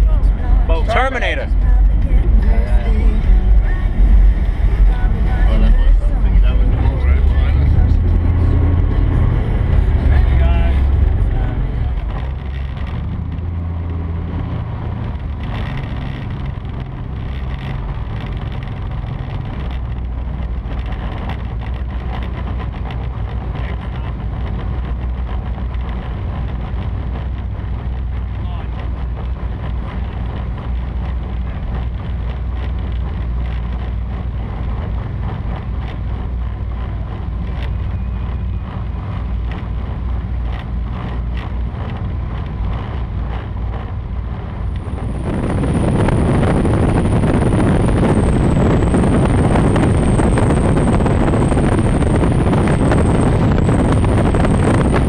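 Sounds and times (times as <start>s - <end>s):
boat engines droning: 0.0s - 55.0s.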